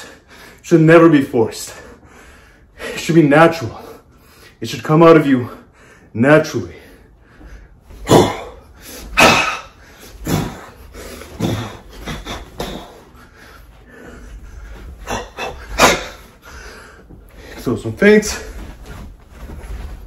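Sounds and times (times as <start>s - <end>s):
sharp forceful exhalations: 8.1s - 17.6s.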